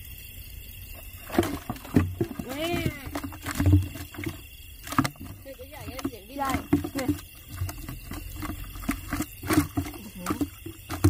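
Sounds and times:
water sloshing in bucket: 0.9s - 11.0s
plastic tub and bucket knocking: 1.2s - 11.0s.

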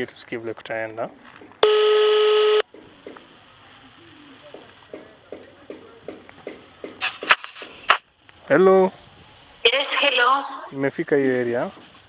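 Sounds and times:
mobile phone beep: 1.6s - 2.6s.

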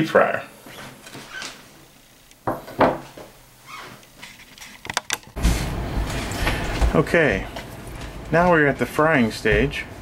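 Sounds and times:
steady low hum: 5.4s - 10.0s.

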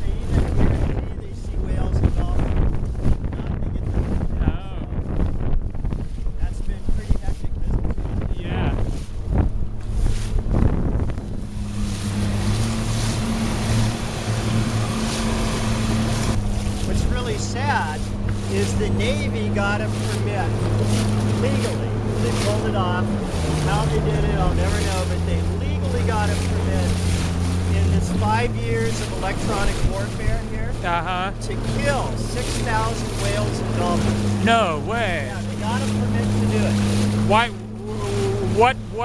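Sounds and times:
boat motor humming: 0.0s - 39.0s
water rushing against boat: 0.0s - 39.0s
wind buffeting microphone: 0.0s - 39.0s.

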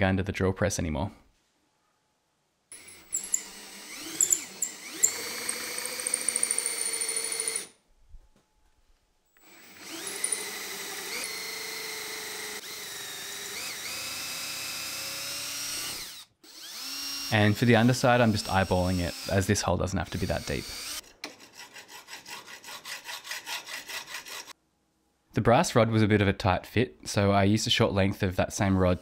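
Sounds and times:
electric drill boring into wood: 2.7s - 7.8s, 9.4s - 19.5s, 20.1s - 21.0s.

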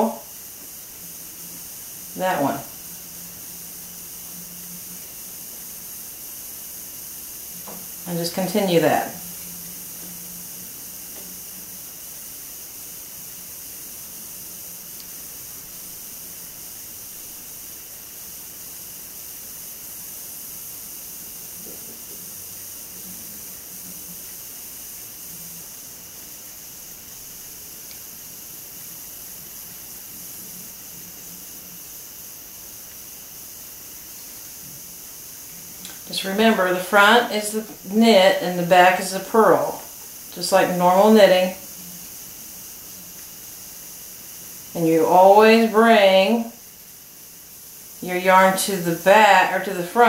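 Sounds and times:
faint low hum: 0.0s - 50.0s
recording hiss: 0.0s - 50.0s.

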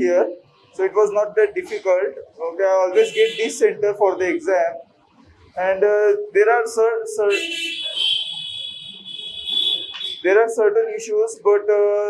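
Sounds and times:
people talking: 0.0s - 4.8s, 5.6s - 8.1s, 9.9s - 12.0s
high-pitched buzzer tone: 3.0s - 3.5s, 7.3s - 10.2s.

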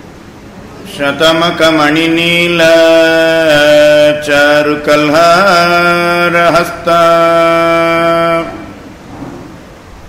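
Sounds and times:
man chanting verse: 0.8s - 8.8s.

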